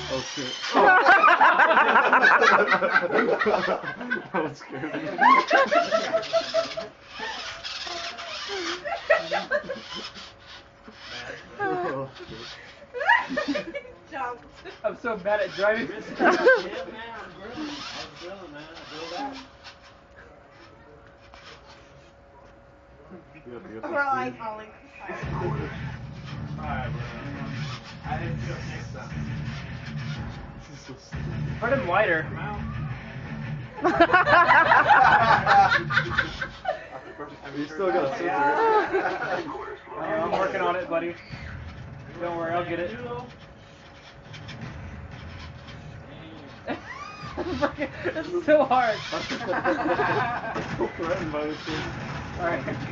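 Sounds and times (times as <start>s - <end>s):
person laughing: 0.8s - 7.4s, 13.0s - 14.0s, 33.8s - 37.0s, 46.7s - 48.2s.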